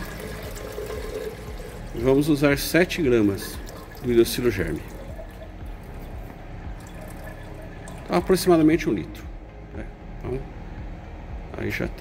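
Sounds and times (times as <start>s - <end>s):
water pouring into glass beaker: 0.0s - 8.7s.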